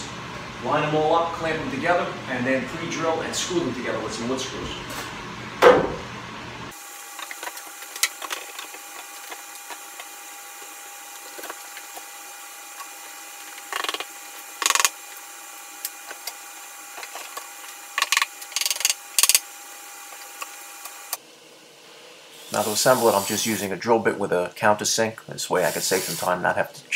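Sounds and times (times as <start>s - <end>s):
steady background hum: 0.0s - 26.9s.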